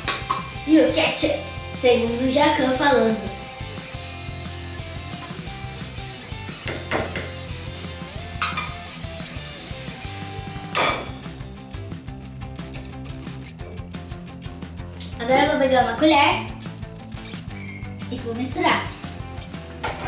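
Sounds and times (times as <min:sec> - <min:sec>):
metal spoon knocking in steel bowl: 0:06.7 - 0:07.4.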